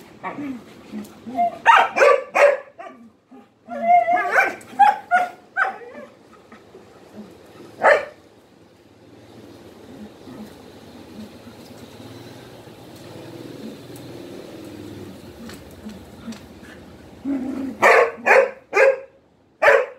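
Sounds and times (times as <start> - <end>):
dog barking: 1.6 - 3.0, 4.2 - 6.1, 7.8 - 8.2, 17.8 - 19.9.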